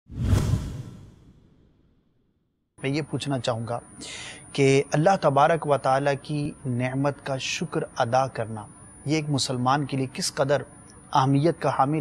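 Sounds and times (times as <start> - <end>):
whoosh with deep boom: 0.1 - 1.8.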